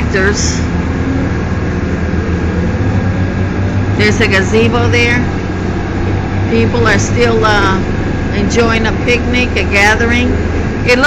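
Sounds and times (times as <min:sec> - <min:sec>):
low engine drone: 0:00.0 - 0:11.0
road noise: 0:00.0 - 0:11.0.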